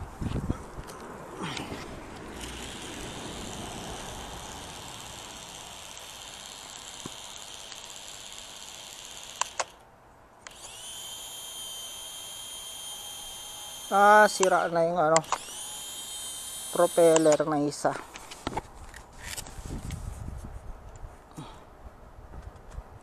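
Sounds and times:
quadcopter propellers whining: 0:00.4 - 0:09.8, 0:10.4 - 0:17.9
sharp clicks: 0:00.8 - 0:10.8, 0:13.9 - 0:15.6, 0:16.7 - 0:17.5.

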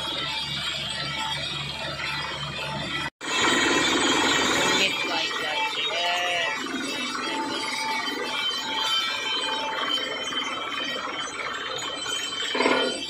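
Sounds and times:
drilling rig din: 0:00.0 - 0:13.0
short metallic ringing tones: 0:03.8 - 0:13.0.

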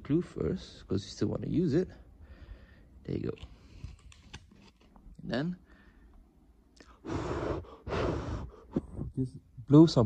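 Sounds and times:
puffs of blown air: 0:06.8 - 0:09.2.

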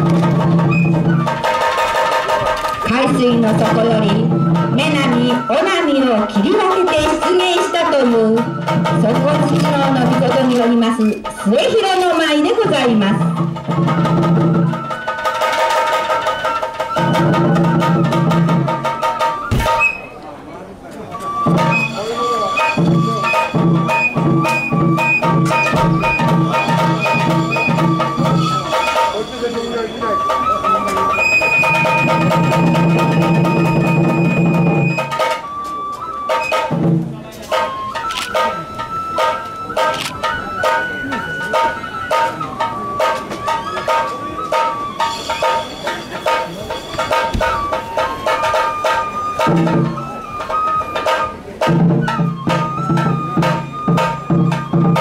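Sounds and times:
drum strokes: 0:00.0 - 0:20.2, 0:20.9 - 0:55.0
high flute melody: 0:00.0 - 0:55.0.

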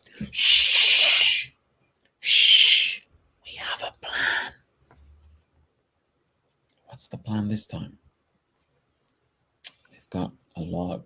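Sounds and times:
man speaking: 0:06.9 - 0:08.0, 0:10.0 - 0:11.0.

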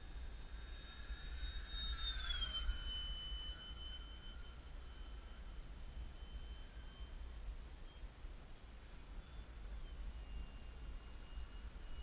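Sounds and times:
electric jet fan whine flying past: 0:00.0 - 0:12.0.

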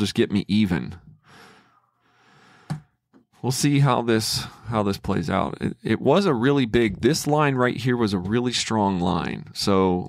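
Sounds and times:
man breathing: 0:01.1 - 0:03.0.

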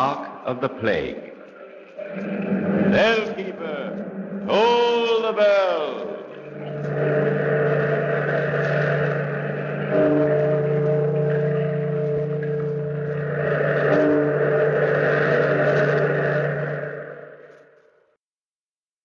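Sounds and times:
surf washing: 0:01.0 - 0:17.6
deep bell tolling: 0:02.1 - 0:17.4.

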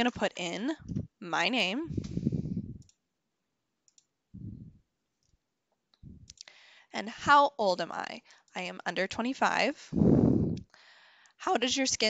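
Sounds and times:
person speaking: 0:00.0 - 0:02.9
soft low thumps: 0:00.8 - 0:01.2, 0:01.9 - 0:02.9, 0:04.4 - 0:04.8, 0:06.0 - 0:06.4
person breathing: 0:01.9 - 0:02.8, 0:06.3 - 0:06.9, 0:09.9 - 0:11.4
computer mouse clicks: 0:03.9 - 0:04.1.

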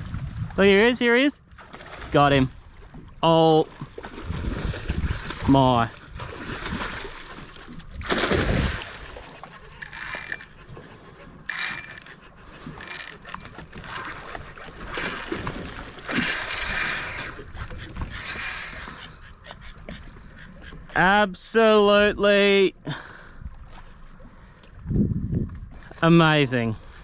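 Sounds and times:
fish thrashing and splashing water: 0:01.5 - 0:21.0.

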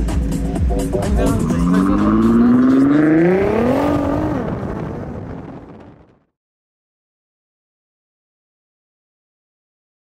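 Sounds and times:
car engine accelerating: 0:00.0 - 0:06.1.

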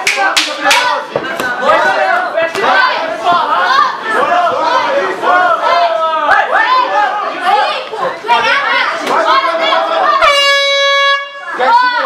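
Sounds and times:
spectators shouting and cheering: 0:00.0 - 0:12.0
air horn blast: 0:10.2 - 0:11.5.

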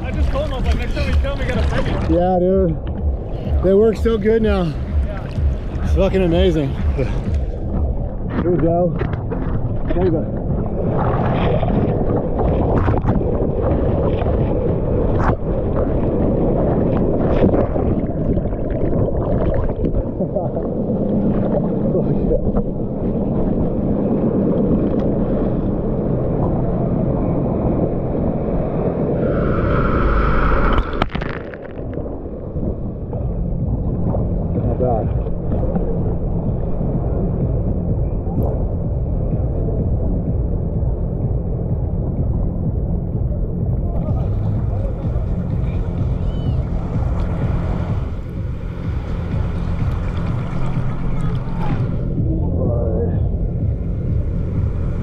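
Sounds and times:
seawater sloshing: 0:00.0 - 0:23.4, 0:30.4 - 0:55.0
muffled surf rumble: 0:00.0 - 0:55.0.

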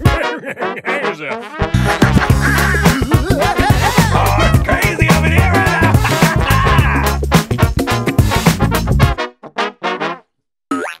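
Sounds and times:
full band music: 0:01.7 - 0:09.2.

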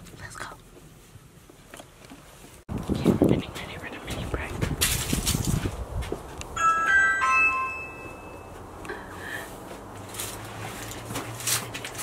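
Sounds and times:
doorbell chime tune: 0:06.6 - 0:08.6.

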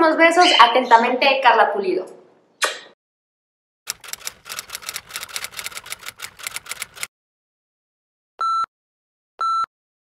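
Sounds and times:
typing key clicks: 0:03.9 - 0:07.1.

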